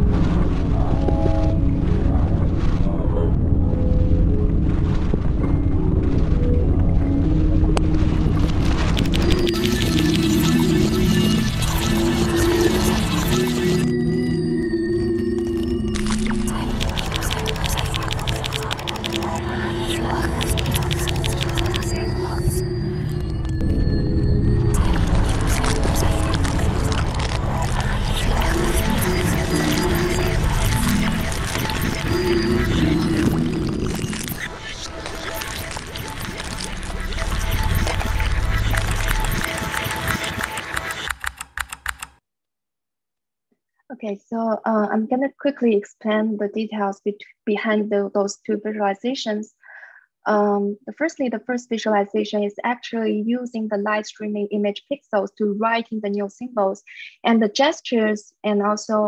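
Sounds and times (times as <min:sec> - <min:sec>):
rapid clicks: 0:08.7 - 0:13.8, 0:16.0 - 0:22.1, 0:25.0 - 0:42.2
fast run of clicks: 0:08.9 - 0:10.5, 0:16.7 - 0:19.4, 0:20.2 - 0:22.0, 0:37.5 - 0:42.2
low sustained drone tones: 0:08.9 - 0:40.9.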